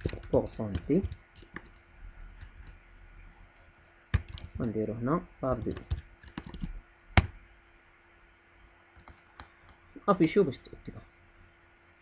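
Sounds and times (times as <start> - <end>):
keyboard key clicks: 0.0 - 1.8, 4.2 - 4.8, 5.5 - 7.4.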